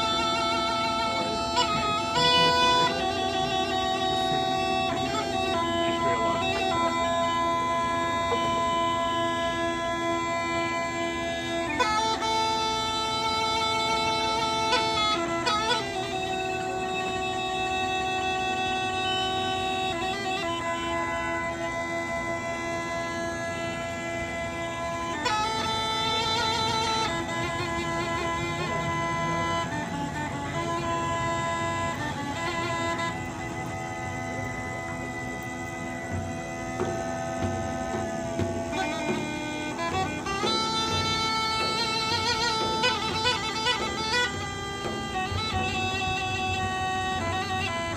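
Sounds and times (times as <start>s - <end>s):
bagpipe melody over drone: 0.0s - 47.9s.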